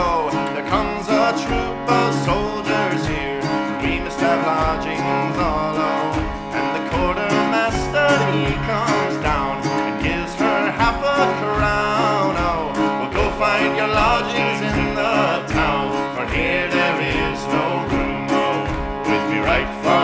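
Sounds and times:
ornamented melody line: 0.0 - 20.0
plucked strings: 0.0 - 20.0
steady beat: 0.0 - 20.0.

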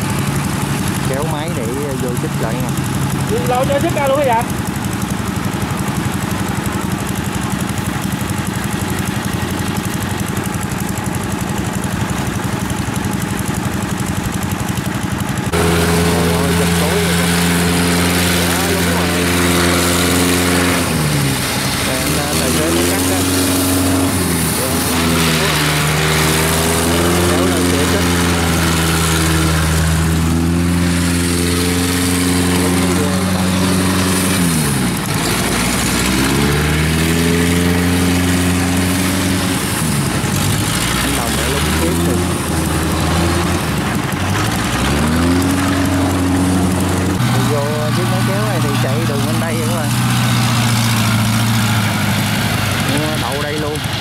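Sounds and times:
diesel engines running: 0.0 - 54.0
tracked vehicle engine in mud: 0.0 - 54.0.

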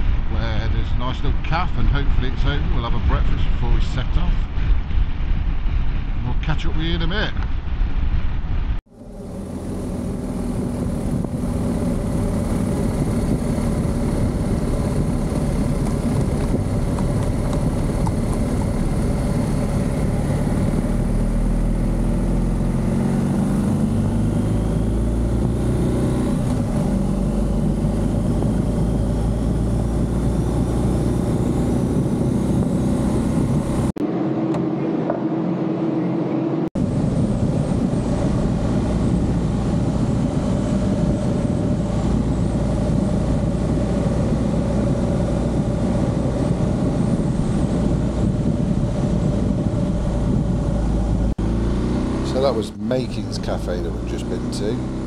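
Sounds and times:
wind and road noise: 0.0 - 55.0
motorcycle engine rumble: 7.5 - 34.0, 36.8 - 55.0.

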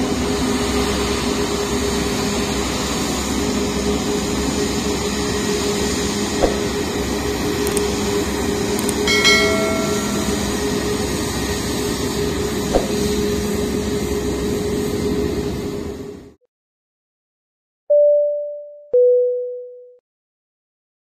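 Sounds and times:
jet engines running: 0.0 - 16.4
short clicks: 7.6 - 7.9, 8.8 - 9.0
high ringing tone: 8.9 - 11.6.

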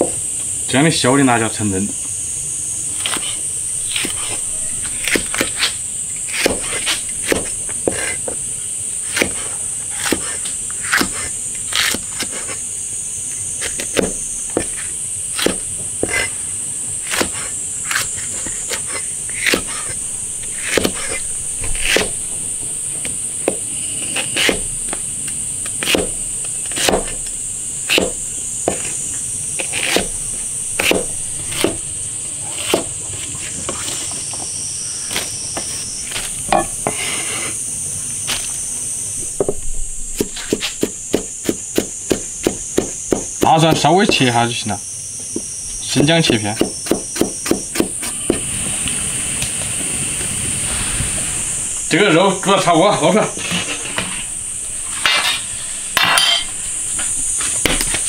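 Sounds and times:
high-pitched insect drone: 0.0 - 58.0
cleaver chopping on cutting board: 6.4 - 8.2, 9.1 - 12.5, 13.6 - 14.8, 17.1 - 22.2, 25.8 - 27.2, 27.9 - 28.9, 29.6 - 30.2, 30.8 - 31.8, 32.6 - 32.9, 40.2 - 44.3, 46.3 - 48.4.

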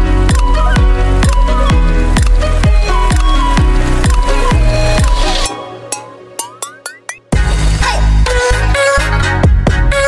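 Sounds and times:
electronic music: 0.0 - 10.0.

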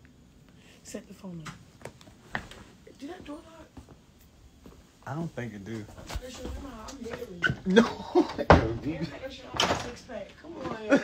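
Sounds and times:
voices talking: 5.0 - 11.0.

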